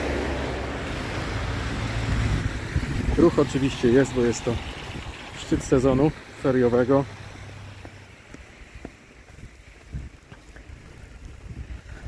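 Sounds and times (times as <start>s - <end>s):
car tyres on slushy road: 0.0s - 12.0s
mountain stream rushing: 0.0s - 12.0s.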